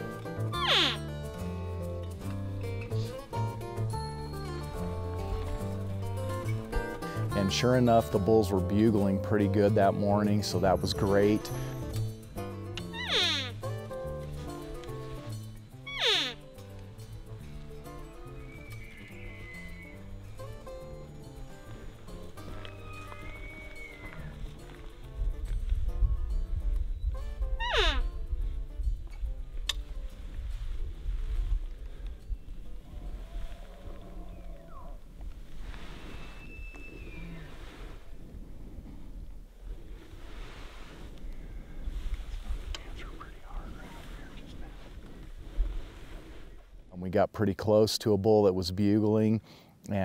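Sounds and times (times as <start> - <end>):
elk bugling: 0.0 - 7.7, 10.4 - 25.2, 27.4 - 28.3, 31.9 - 46.8
background music: 0.0 - 33.2.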